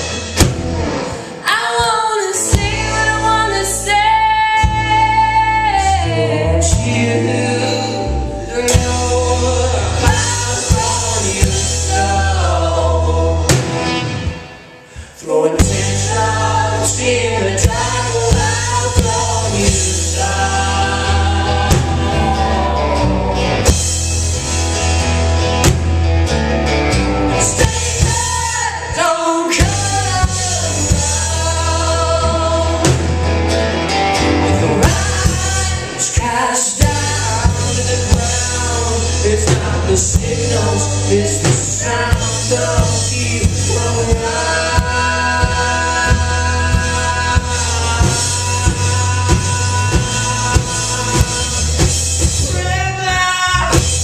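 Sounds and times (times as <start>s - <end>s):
live rock band playing: 0.0s - 54.0s
person singing: 1.3s - 13.7s, 15.2s - 23.8s, 27.3s - 33.2s, 34.4s - 53.8s.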